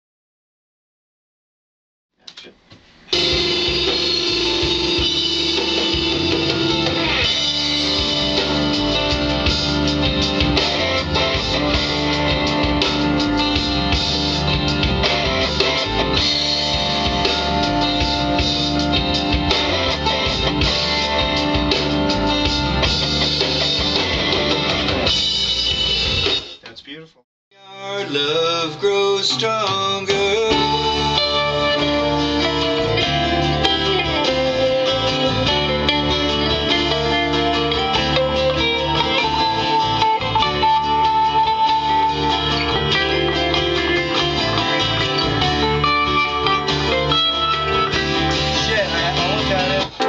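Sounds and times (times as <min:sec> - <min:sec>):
rock music with drum kit: 0:03.1 - 0:26.7, 0:27.9 - 0:50.0.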